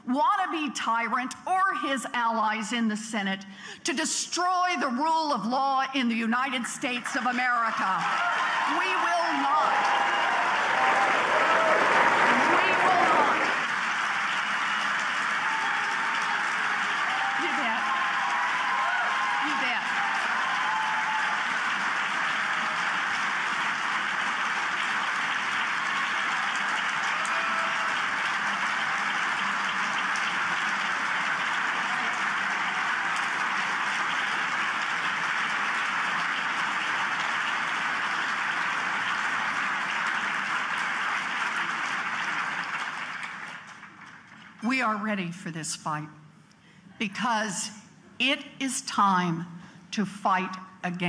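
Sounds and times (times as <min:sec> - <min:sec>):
large crowd applauding: 0:07.1 - 0:44.6.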